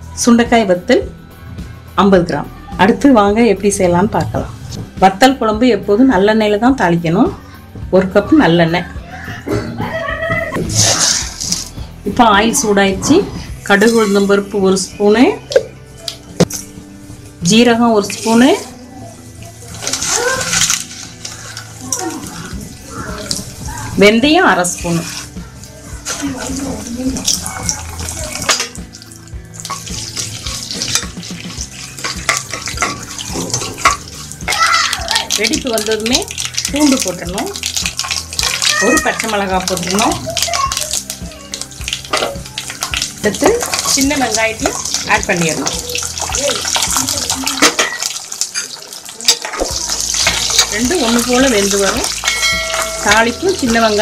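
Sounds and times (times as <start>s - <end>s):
seeds sizzling in hot oil: 10.7s - 11.8s, 17.0s - 54.0s.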